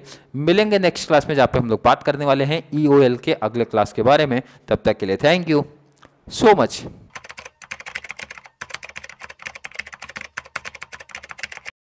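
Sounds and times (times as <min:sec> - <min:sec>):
rapid keyboard typing: 0:07.1 - 0:11.8.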